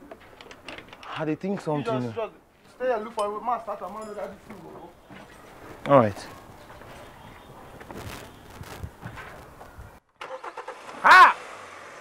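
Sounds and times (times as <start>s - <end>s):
low steady background noise: 0.0s - 12.0s.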